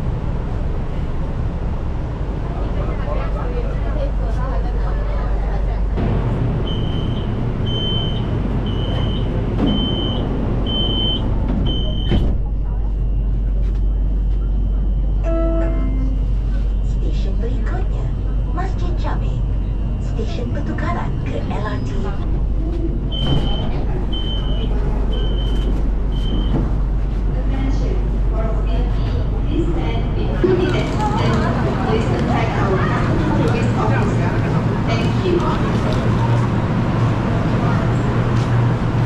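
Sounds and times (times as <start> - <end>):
low rumble of train: 0.0 - 39.0
train doors shutting thump: 6.0 - 12.7, 23.1 - 24.5, 25.1 - 26.9
short high-pitched door beeps: 6.7 - 12.3, 23.1 - 26.6.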